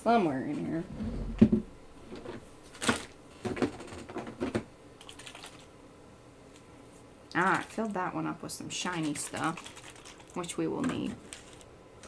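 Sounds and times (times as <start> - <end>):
hard objects knocking and clicking: 1.3 - 4.7.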